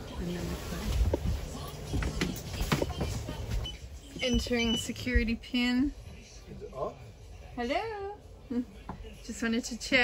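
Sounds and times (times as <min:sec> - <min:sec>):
faint music: 0:00.0 - 0:10.0
footsteps: 0:00.3 - 0:05.4.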